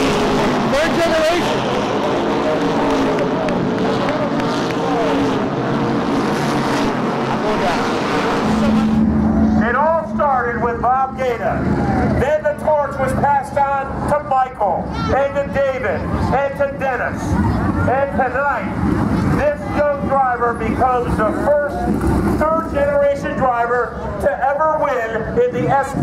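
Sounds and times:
race car engines: 0.0 - 26.0
people's voices: 0.7 - 5.5, 7.4 - 26.0.

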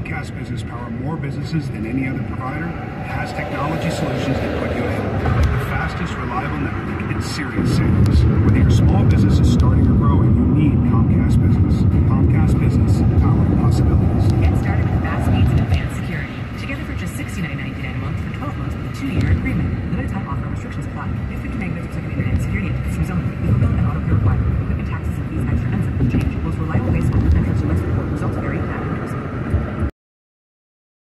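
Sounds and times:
car road and engine rumble: 0.0 - 29.9.

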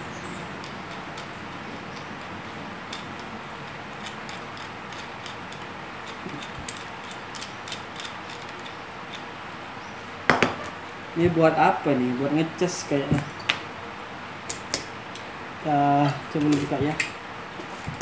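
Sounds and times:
sharp knock on table: 10.3 - 10.6.

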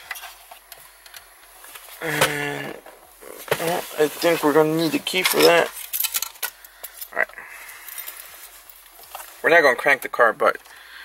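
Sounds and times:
hands rustling: 1.6 - 6.0.

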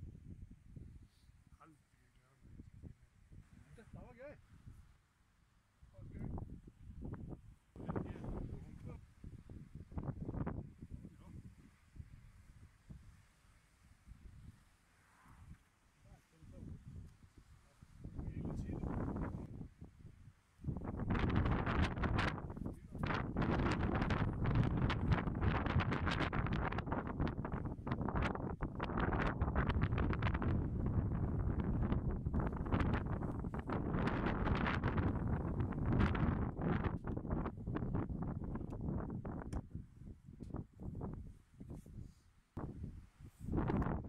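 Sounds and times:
wind buffeting microphone: 6.0 - 13.1, 18.0 - 42.0, 42.6 - 44.0.

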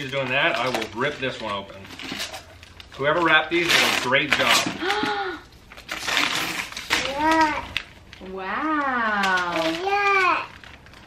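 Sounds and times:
wrapping paper tearing: 0.0 - 11.0.

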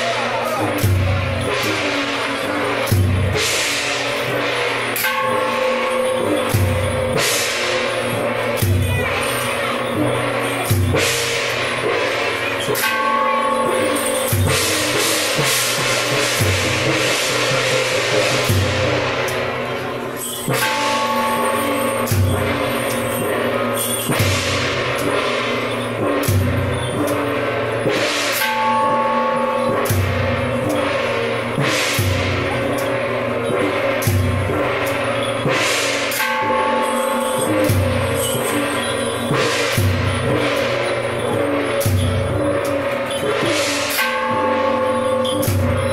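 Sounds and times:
cymbals clashing: 0.0 - 45.9
gongs ringing: 0.0 - 45.9.

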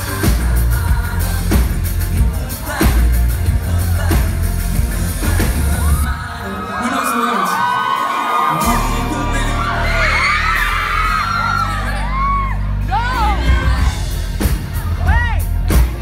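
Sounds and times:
pop-rock band playing: 0.0 - 16.0
audience screaming: 5.6 - 15.9.

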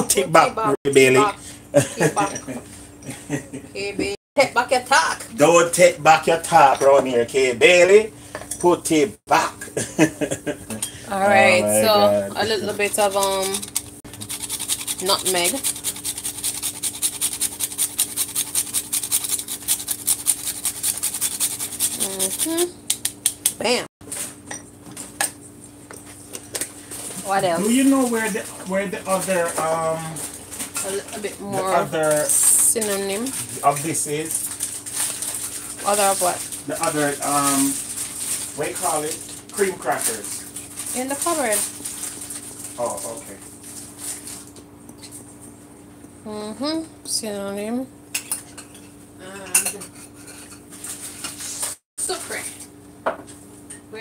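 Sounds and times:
steady low hum: 0.0 - 54.0
utensils clinking against cookware: 48.2 - 51.4.

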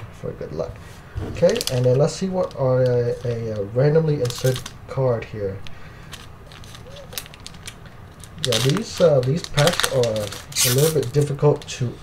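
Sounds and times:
foil wrapper crinkling and tearing: 1.4 - 4.8, 5.6 - 12.0.

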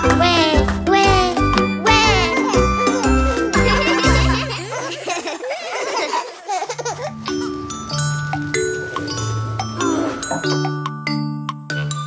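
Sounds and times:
children's song: 0.0 - 6.7
animated characters laughing: 2.3 - 7.6.

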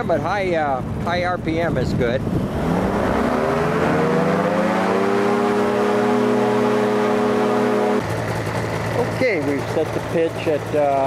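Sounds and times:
engine and propeller revving: 0.0 - 11.0.

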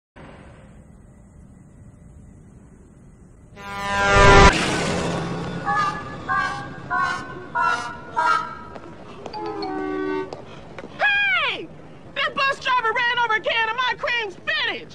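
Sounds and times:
rising swell ending in loud burst: 3.6 - 7.0
short pitched blasts: 3.6 - 8.3.

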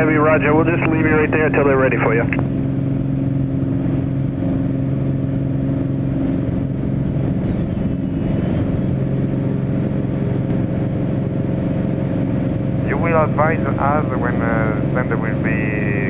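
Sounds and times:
propeller airplane engine drone: 0.0 - 16.0.

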